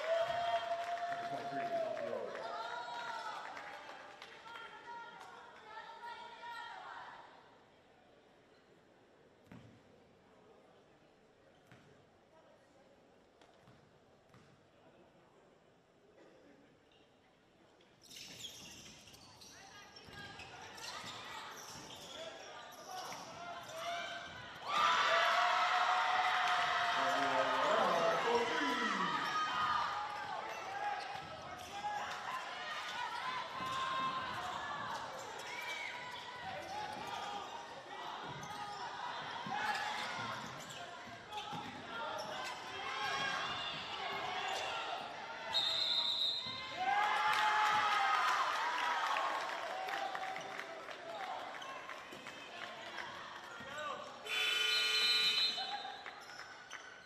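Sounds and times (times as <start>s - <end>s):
people shouting: 24.7s - 30.0s
whistle blowing: 45.5s - 46.6s, 54.3s - 56.0s.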